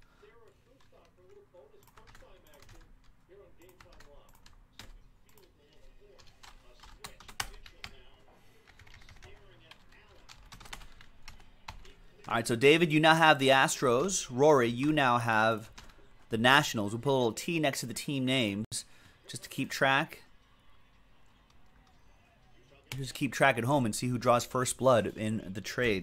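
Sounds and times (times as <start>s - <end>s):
typing on keyboard: 0.8s - 2.9s, 3.6s - 8.1s, 8.7s - 12.3s.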